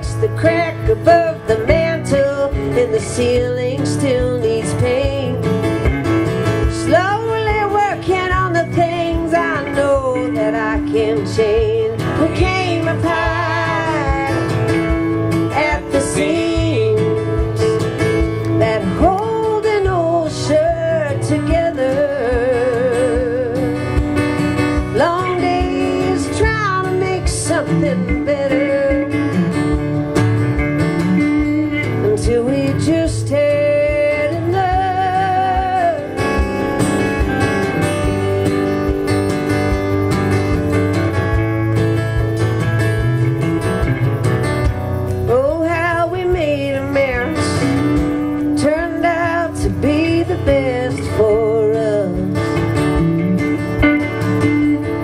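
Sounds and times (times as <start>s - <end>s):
electric guitar solo: 0.0s - 55.0s
strummed acoustic guitar: 0.0s - 55.0s.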